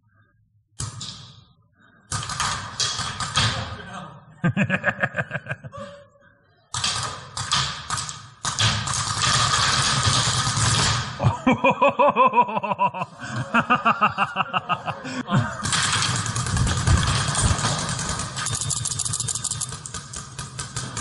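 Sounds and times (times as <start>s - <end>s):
paintball markers firing: 6.8s - 11.1s, 15.6s - 21.0s.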